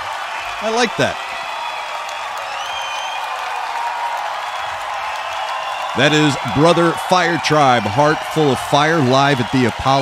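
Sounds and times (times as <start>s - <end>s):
crowd clapping and cheering: 0.0s - 10.0s.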